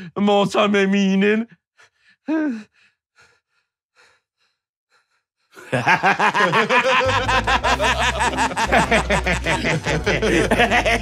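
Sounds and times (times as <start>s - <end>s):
man laughing loudly: 5.6s - 11.0s.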